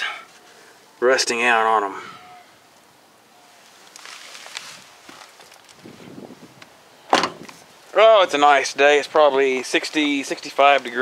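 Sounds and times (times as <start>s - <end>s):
footsteps on gravel: 3.8s - 5.9s.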